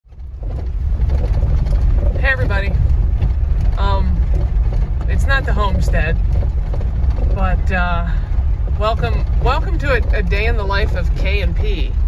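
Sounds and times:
tyres rumbling on dirt road: 0.0s - 12.0s
person's voice: 3.8s - 4.3s, 5.1s - 6.2s, 7.4s - 8.2s, 8.8s - 12.0s.

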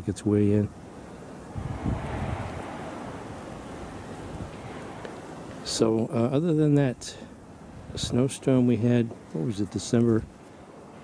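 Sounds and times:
wind buffeting microphone: 0.8s - 6.1s, 7.5s - 8.4s.

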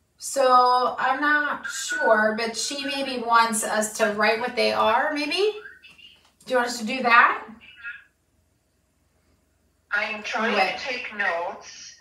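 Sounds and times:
faint steady hum: 0.0s - 12.0s
woman speaking: 0.2s - 5.6s, 6.4s - 7.6s, 9.9s - 12.0s.

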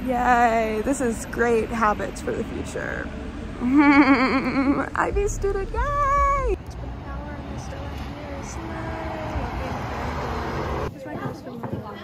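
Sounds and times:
street noise: 0.0s - 12.0s
woman squealing: 3.6s - 4.9s.

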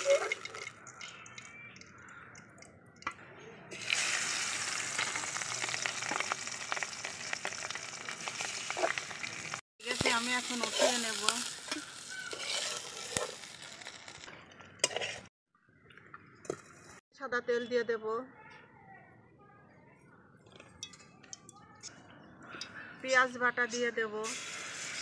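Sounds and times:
fish sizzling in hot oil: 0.0s - 1.5s, 3.7s - 14.3s, 24.2s - 25.0s
metal spatula in pan: 9.9s - 14.2s, 14.8s - 15.3s.

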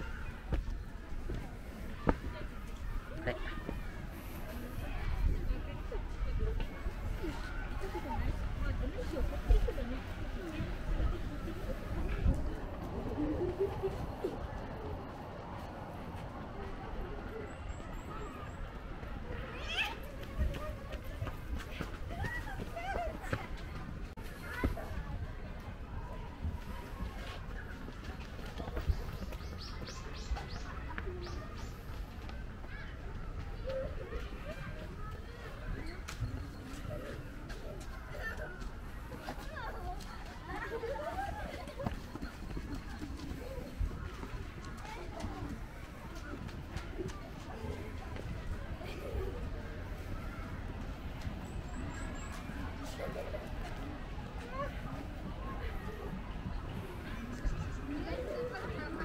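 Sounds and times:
distant voices: 0.0s - 59.0s
footsteps on a dirt path: 26.3s - 58.9s.

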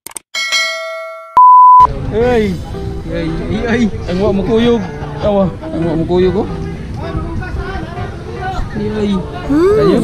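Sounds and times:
bell-like ding: 0.4s - 1.5s
loud high beep: 1.4s - 1.9s.

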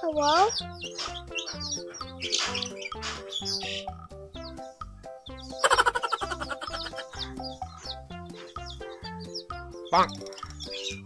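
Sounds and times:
background music: 0.0s - 11.0s
chicks peeping: 0.1s - 11.0s.

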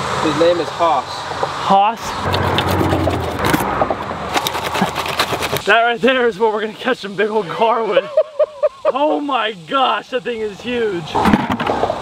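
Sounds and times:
road traffic rumbling overhead: 0.0s - 7.6s, 9.6s - 12.0s
handling clicks and scrapes: 2.2s - 5.7s.

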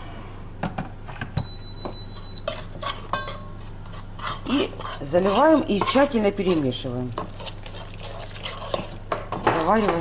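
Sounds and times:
spoon stirring a wet mix: 2.4s - 10.0s.

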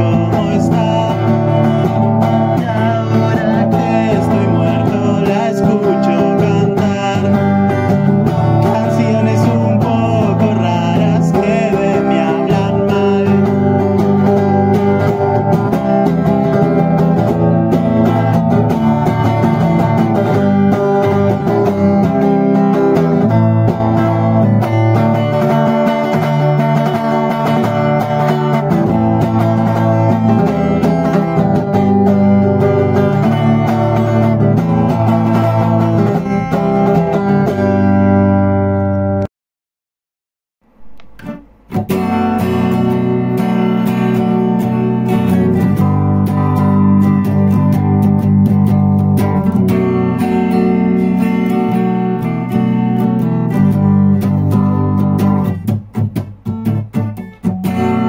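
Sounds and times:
acoustic guitar playing: 0.0s - 39.3s, 40.6s - 58.0s.

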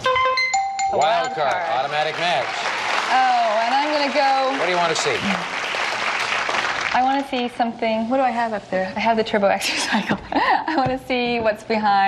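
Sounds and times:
studio audience applauding: 1.0s - 7.6s.

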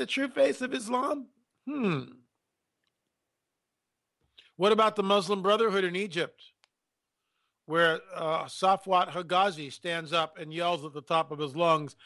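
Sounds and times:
man humming hmm: 1.7s - 2.2s.

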